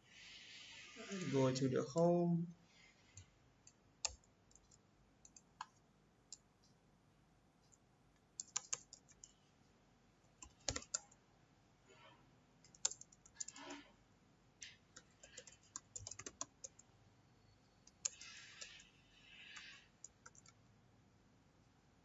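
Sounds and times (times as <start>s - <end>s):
computer keyboard keystrokes: 3.6s - 6.4s, 8.4s - 9.3s, 10.4s - 11.2s, 12.6s - 13.8s, 14.8s - 16.8s, 17.9s - 18.9s, 19.5s - 20.6s.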